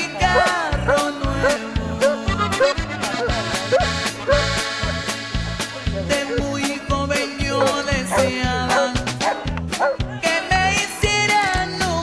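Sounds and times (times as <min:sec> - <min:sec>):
music with steady beat: 0:00.0 - 0:12.0
dog barking: 0:00.3 - 0:04.6, 0:06.0 - 0:06.5, 0:07.6 - 0:10.1.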